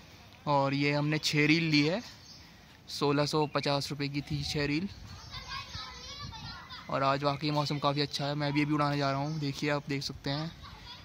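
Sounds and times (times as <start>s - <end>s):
distant children calling out: 0.0s - 11.0s.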